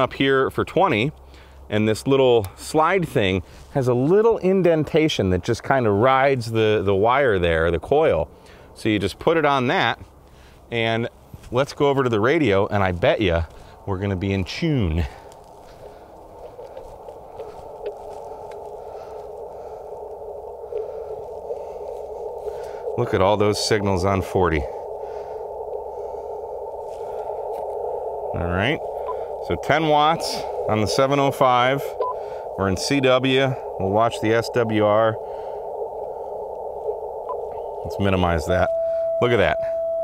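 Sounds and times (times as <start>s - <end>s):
radio receiver hiss: 10.7s - 39.8s.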